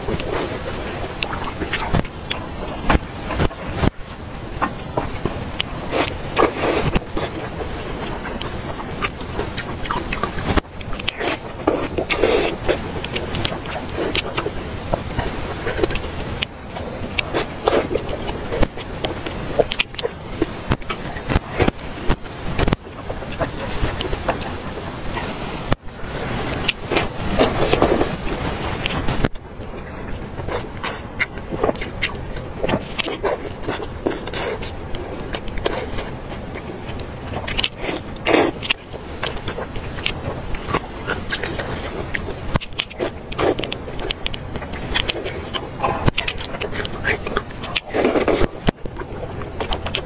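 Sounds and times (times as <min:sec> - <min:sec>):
chewing with wet mouth sounds: 0:00.0 - 0:50.0
lip smacks: 0:04.5 - 0:25.8, 0:28.8 - 0:50.0.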